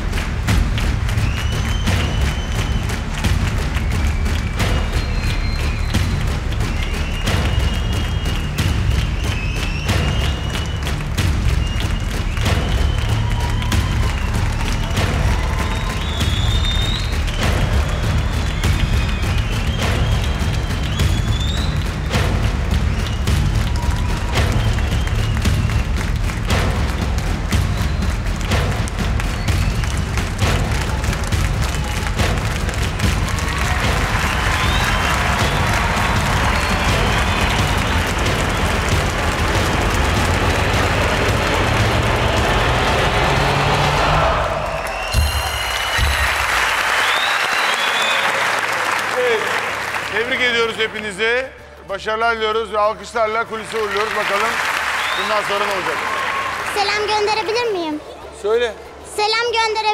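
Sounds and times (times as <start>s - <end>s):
game show music with low beat: 0.0s - 48.6s
applause and cheering: 0.0s - 59.9s.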